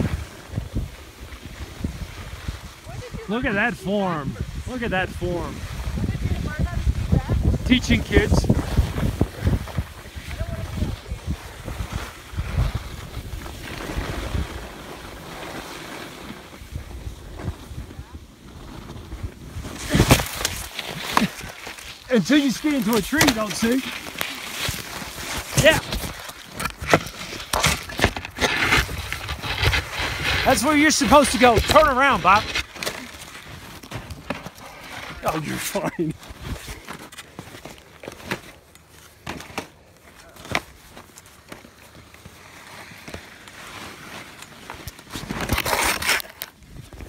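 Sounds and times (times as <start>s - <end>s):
wind rumbling on microphone: 0.0s - 3.5s, 4.2s - 15.3s
skis sliding on snow: 0.0s - 47.0s.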